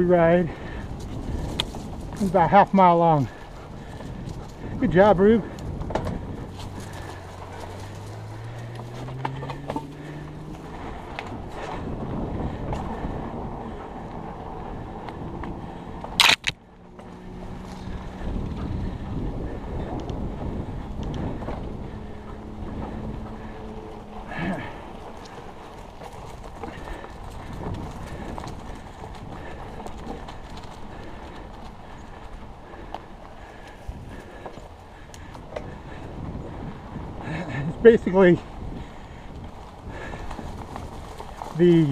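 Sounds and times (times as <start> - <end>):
bike rattling over bumps: 0.0 - 41.9
bike tyres rolling on dirt: 0.0 - 41.9.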